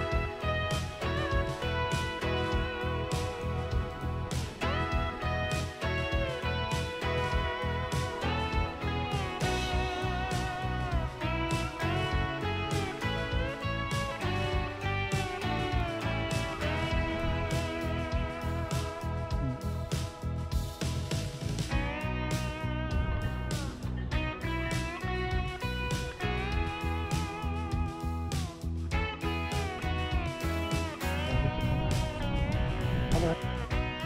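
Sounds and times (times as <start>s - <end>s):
guitar music with sliding notes: 0.0s - 34.0s.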